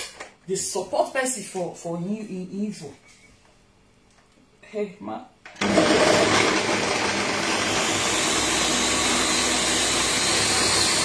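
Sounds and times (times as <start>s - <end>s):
electric blender running: 5.6s - 11.0s.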